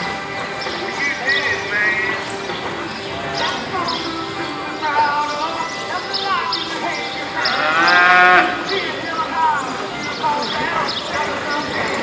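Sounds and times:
cow mooing: 7.4s - 8.7s.

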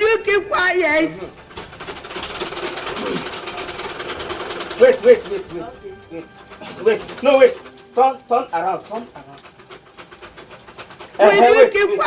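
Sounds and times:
sewing machine running: 0.0s - 12.0s
man talking: 4.8s - 9.4s.

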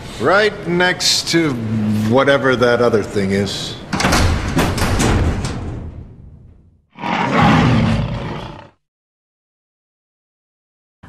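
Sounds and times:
lion roar: 6.9s - 8.8s.

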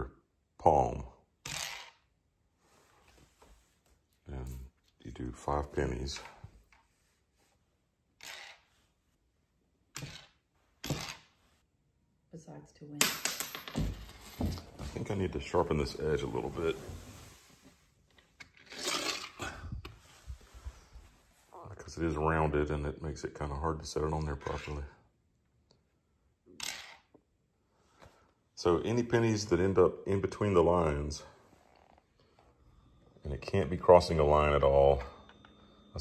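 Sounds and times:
coins struck off wooden board: 1.4s - 1.9s, 10.0s - 11.3s, 13.0s - 14.6s
coin sliding across board: 1.5s - 2.0s, 8.2s - 8.7s, 18.6s - 19.4s, 26.6s - 27.0s.

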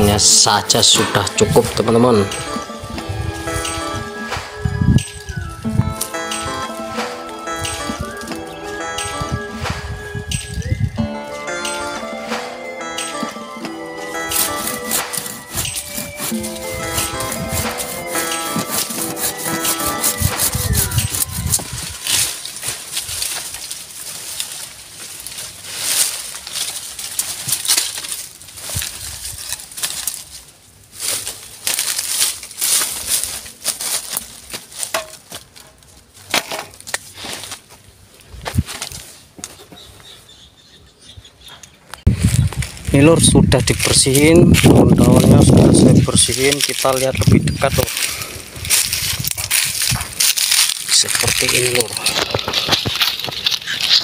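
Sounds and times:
background music: 0.0s - 22.7s
hand saw cutting stems: 14.1s - 24.5s.

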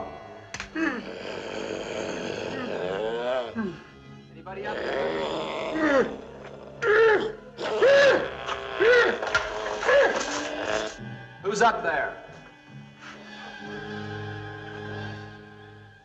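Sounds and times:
man groaning and crying out: 0.7s - 3.8s, 4.6s - 11.0s.

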